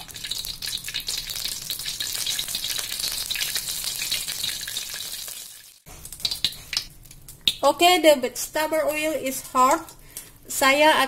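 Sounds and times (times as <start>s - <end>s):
oil sizzling in a wok: 0.0s - 7.7s.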